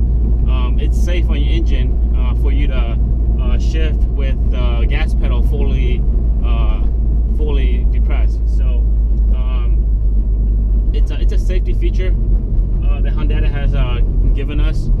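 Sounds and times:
car engine droning: 0.0s - 15.0s
man talking: 0.5s - 9.8s, 11.0s - 12.2s, 12.8s - 14.9s.

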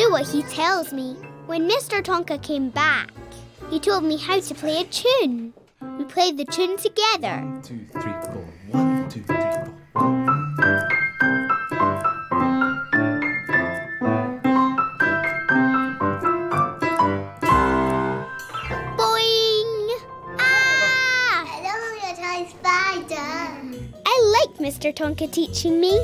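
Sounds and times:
upright piano playing a tune: 5.8s - 21.9s.

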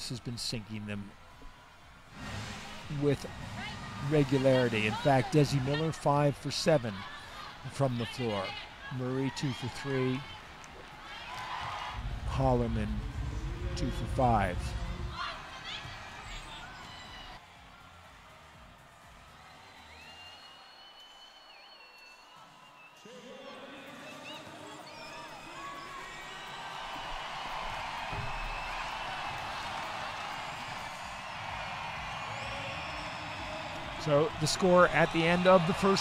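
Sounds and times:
crowd cheering: 0.0s - 36.0s
crowd chatter: 23.0s - 36.0s.

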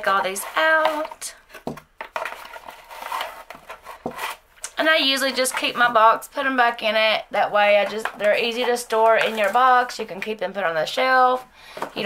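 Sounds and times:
woman speaking: 0.0s - 1.4s, 4.7s - 12.0s
rustling: 0.0s - 6.0s.

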